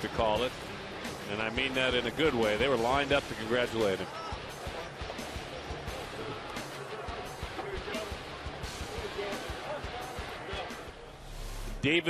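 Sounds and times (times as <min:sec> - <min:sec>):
crowd chatter: 0:00.0 - 0:12.0
music over loudspeakers: 0:00.0 - 0:12.0.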